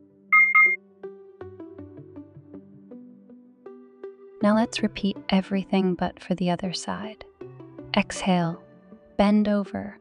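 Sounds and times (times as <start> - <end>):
double electronic beep: 0.4 - 0.8
soft plucked background music: 4.4 - 10.0.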